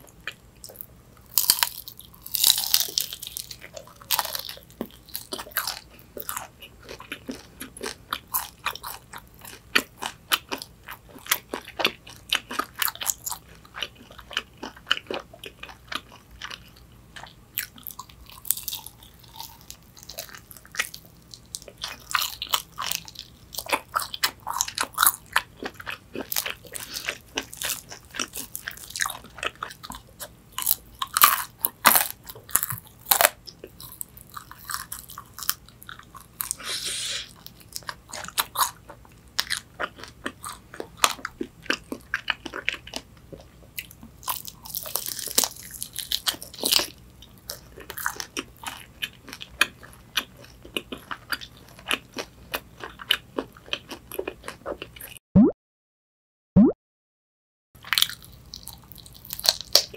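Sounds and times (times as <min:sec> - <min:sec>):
chewing: 0:00.0 - 0:55.2
crunching of fried chicken: 0:00.0 - 0:55.2, 0:57.8 - 0:59.9.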